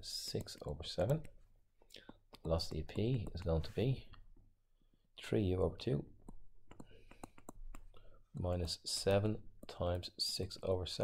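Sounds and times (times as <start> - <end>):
stylus tapping on tablet: 0.2 - 4.4, 6.2 - 10.7.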